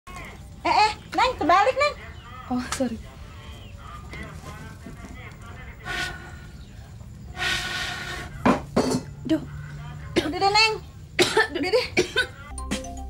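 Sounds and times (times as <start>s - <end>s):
woman blowing through pipe: 5.8s - 6.4s, 7.3s - 8.3s
woman coughing: 11.2s - 12.4s.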